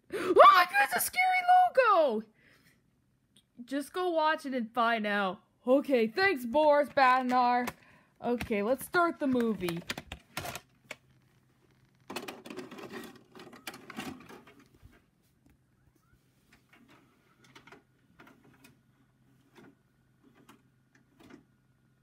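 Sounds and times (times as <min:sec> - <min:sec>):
low steady hum: 0:00.0 - 0:22.0
tape deck rattling and whirring: 0:08.9 - 0:14.8.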